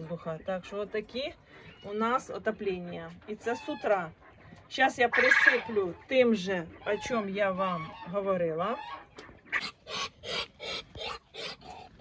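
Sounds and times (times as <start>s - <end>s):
animal huffing breaths: 9.5s - 12.0s.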